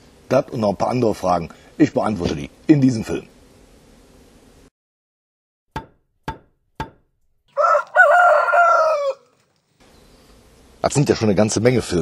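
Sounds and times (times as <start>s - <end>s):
sharp knocks: 5.7s - 7.1s
rooster crowing: 7.5s - 9.3s.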